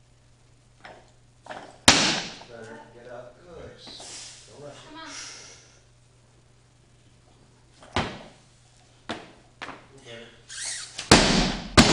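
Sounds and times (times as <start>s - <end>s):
barbell crashing down: 1.5s - 2.5s.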